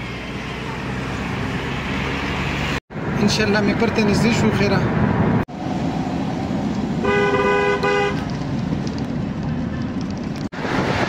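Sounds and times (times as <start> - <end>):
car road and engine noise: 0.0 - 11.0
vehicle horn: 7.0 - 8.2.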